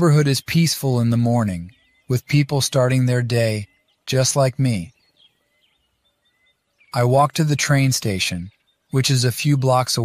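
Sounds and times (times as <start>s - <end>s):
faint birds chirping: 0.0s - 10.0s.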